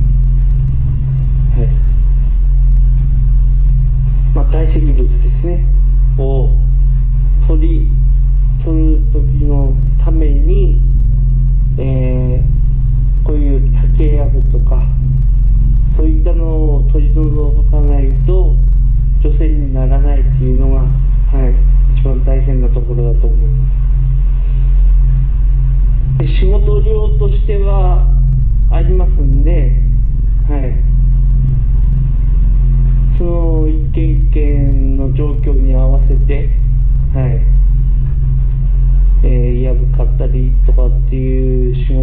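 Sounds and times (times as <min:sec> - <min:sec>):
loud low drone: 0:00.0 - 0:42.0
steady low hum: 0:00.0 - 0:42.0
person speaking: 0:01.4 - 0:01.9, 0:04.2 - 0:06.6, 0:11.8 - 0:12.6, 0:13.2 - 0:15.0, 0:19.2 - 0:23.6, 0:26.2 - 0:30.9, 0:33.1 - 0:37.6, 0:39.2 - 0:42.0.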